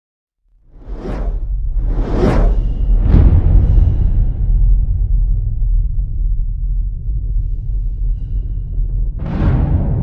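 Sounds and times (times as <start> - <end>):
cinematic whoosh: 0.7 - 5.1.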